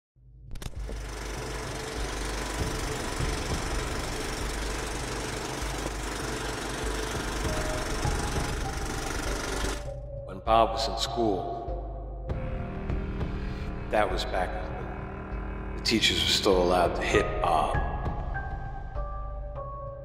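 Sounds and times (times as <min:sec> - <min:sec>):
music: 0:00.2 - 0:20.0
dense rattling noise: 0:00.5 - 0:09.9.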